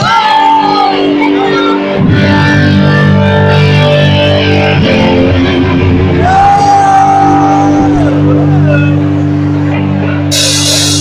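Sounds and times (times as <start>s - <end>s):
rock band with distorted guitars: 0.0s - 11.0s
high note sliding down: 10.3s - 11.0s.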